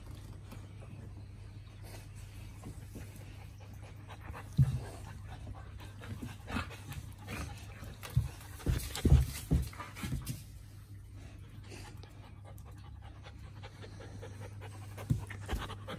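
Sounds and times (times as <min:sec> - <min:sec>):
dogs panting: 0:00.6 - 0:15.9
dogs bumping: 0:04.2 - 0:10.6.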